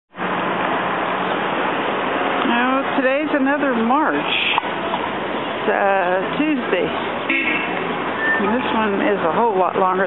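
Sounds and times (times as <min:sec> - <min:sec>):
outdoor street noise: 0:00.1 - 0:10.0.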